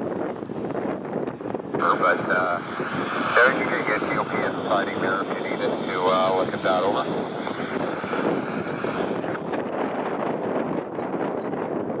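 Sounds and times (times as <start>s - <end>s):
freight train rumbling: 0.0s - 10.7s
wind on microphone: 0.0s - 12.0s.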